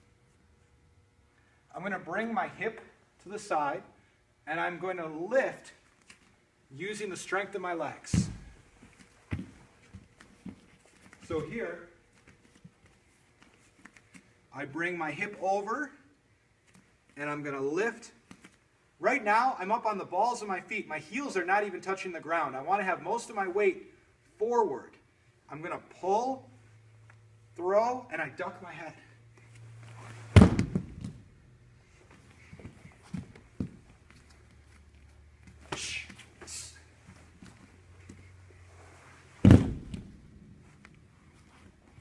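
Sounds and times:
bare feet on vinyl mat: 0:08.0 - 0:14.5, 0:29.3 - 0:42.0
body slamming onto mat: 0:08.1 - 0:08.6, 0:30.2 - 0:31.3, 0:39.4 - 0:40.2
smaller thumps: 0:30.3 - 0:31.3, 0:39.4 - 0:40.3.

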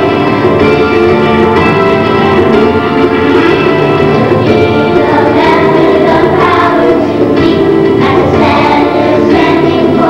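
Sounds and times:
backing music: 0:00.0 - 0:10.0
group of voices singing: 0:04.6 - 0:10.0.

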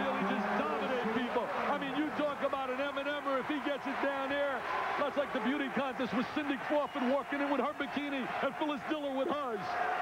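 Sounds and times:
men talking: 0:00.0 - 0:09.8.

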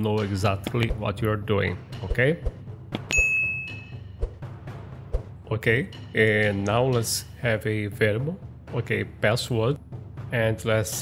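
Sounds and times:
notification bell chime: 0:03.1 - 0:04.1.

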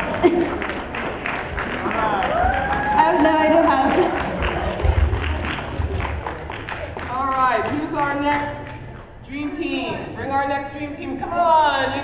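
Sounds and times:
people clapping: 0:00.0 - 0:09.1
crowd chatter: 0:00.0 - 0:12.0.

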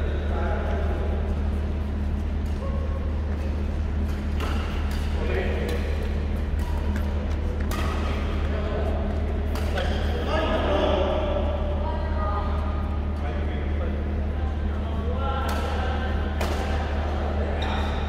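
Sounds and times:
steady low hum: 0:00.0 - 0:18.0
rackets hitting shuttlecock: 0:04.1 - 0:08.6, 0:09.5 - 0:10.0, 0:15.4 - 0:16.9.

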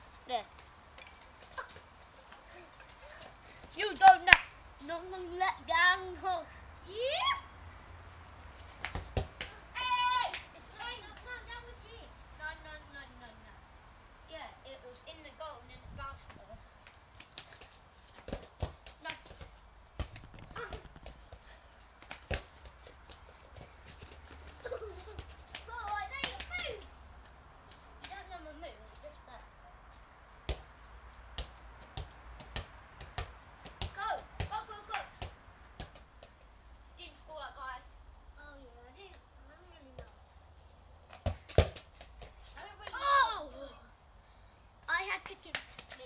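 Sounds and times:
football kicked on paving: 0:08.8 - 0:09.6, 0:17.4 - 0:21.4, 0:31.3 - 0:36.3, 0:41.1 - 0:43.0.

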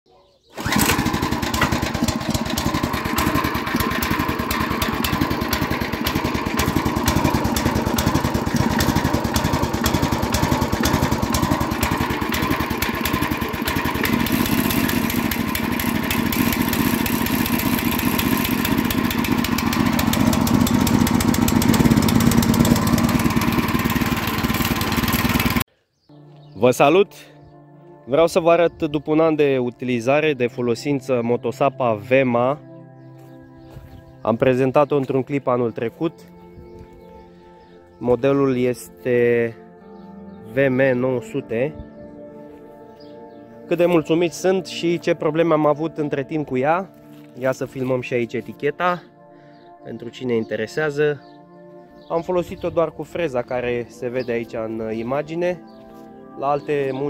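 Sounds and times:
petrol engine running: 0:00.6 - 0:25.6.

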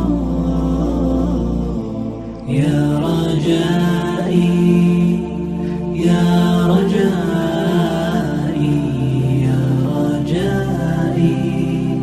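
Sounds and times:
devotional vocal chant: 0:00.0 - 0:12.0
low held drone: 0:00.0 - 0:12.0.

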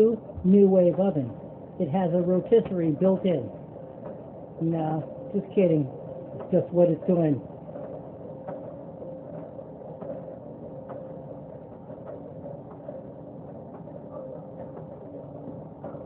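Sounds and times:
oven fan humming: 0:00.0 - 0:16.0.

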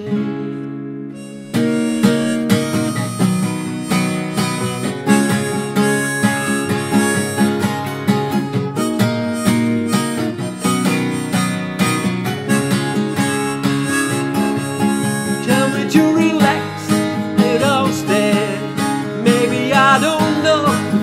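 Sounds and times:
acoustic guitar strumming: 0:00.0 - 0:21.0
wavering melody line: 0:01.1 - 0:21.0.

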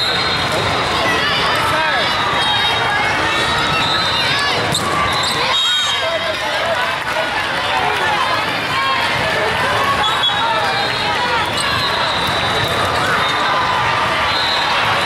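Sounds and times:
crowd chatter in hall: 0:00.0 - 0:15.0
players and spectators voices: 0:00.0 - 0:15.0
sneakers squeaking: 0:03.6 - 0:05.6, 0:11.3 - 0:15.0.

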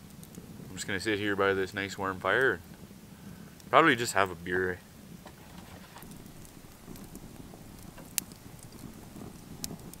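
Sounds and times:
sharp pops from fire: 0:00.0 - 0:01.1, 0:01.7 - 0:10.0
fire crackling: 0:00.0 - 0:10.0.

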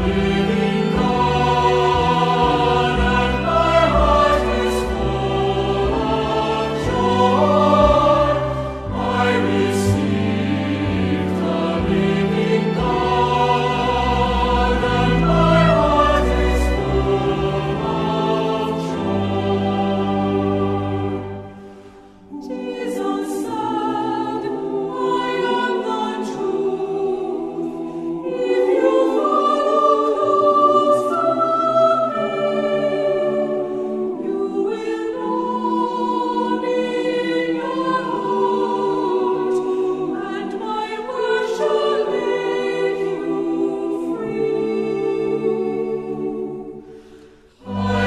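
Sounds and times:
choir singing a hymn: 0:00.0 - 0:48.0.

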